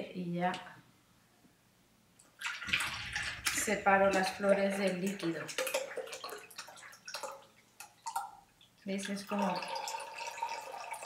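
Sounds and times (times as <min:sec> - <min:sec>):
liquid pouring into funnel: 0:02.3 - 0:11.0.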